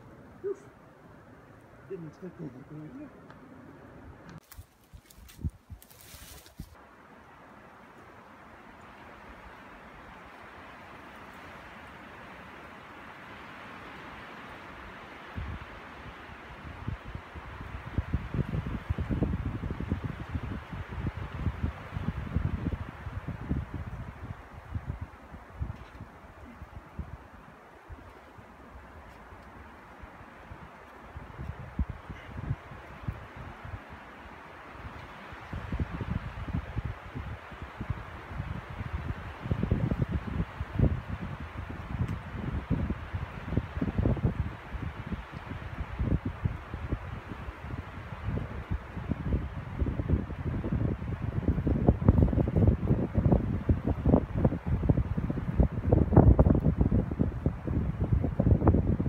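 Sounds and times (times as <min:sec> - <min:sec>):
wind through pine trees: 0:00.0 - 0:59.0
wind buffeting microphone: 0:02.0 - 0:06.8, 0:15.3 - 0:59.0.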